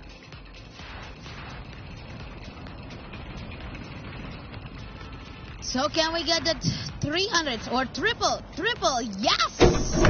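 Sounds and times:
wheel spinning with fast ticking: 0.0s - 6.6s.

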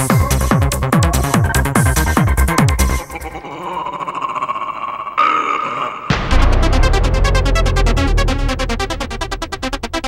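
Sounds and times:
sustained synthesizer texture: 6.1s - 10.0s.

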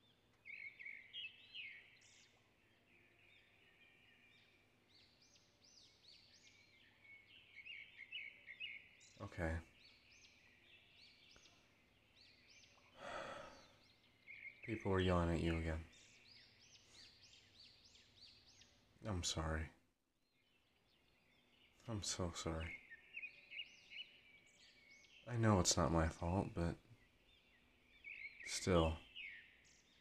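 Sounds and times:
birds chirping: 0.0s - 30.0s
breathy exhale: 13.0s - 13.8s.

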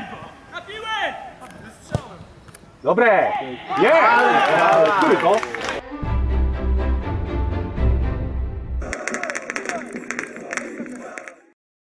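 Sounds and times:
players shouting: 3.2s - 5.4s.

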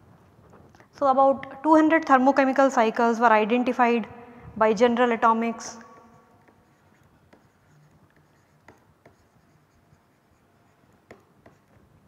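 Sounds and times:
stylus tapping and scraping on tablet: 6.0s - 11.9s.

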